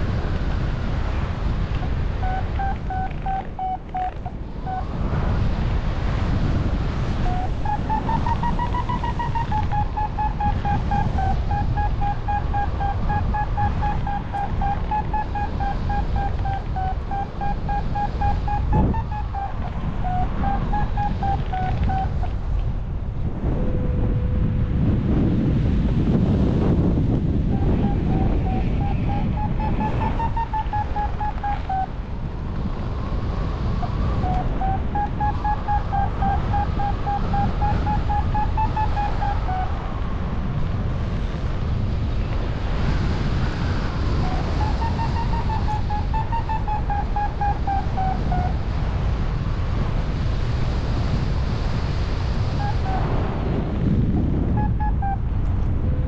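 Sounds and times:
wind over microphone: 0:00.0 - 0:56.0
variometer rapid beeps: 0:02.2 - 0:04.9, 0:07.2 - 0:22.2, 0:27.5 - 0:31.9, 0:33.8 - 0:39.7.

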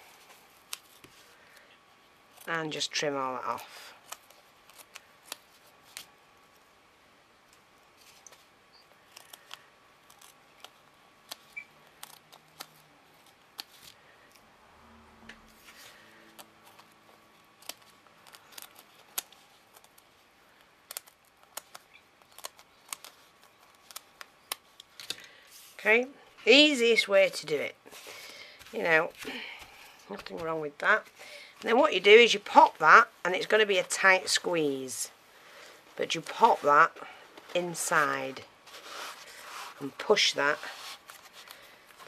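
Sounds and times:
scissors snipping foam: 0:09.1 - 0:13.7, 0:17.6 - 0:20.1.

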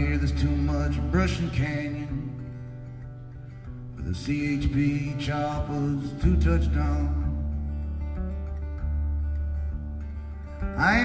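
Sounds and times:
man singing: 0:00.0 - 0:02.6, 0:04.0 - 0:07.7, 0:10.8 - 0:11.0
acoustic guitar playing: 0:00.0 - 0:11.0.

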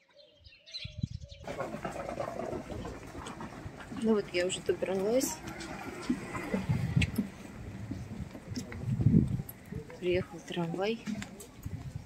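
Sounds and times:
birds chirping: 0:00.0 - 0:08.2
outdoor noise with low rumble: 0:01.4 - 0:12.0.

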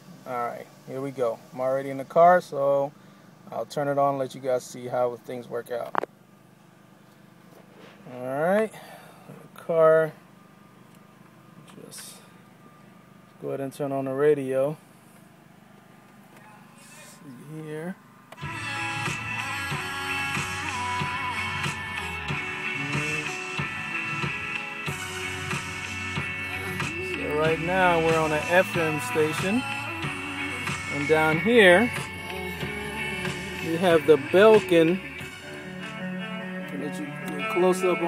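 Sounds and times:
car cabin hum: 0:00.0 - 0:38.0.

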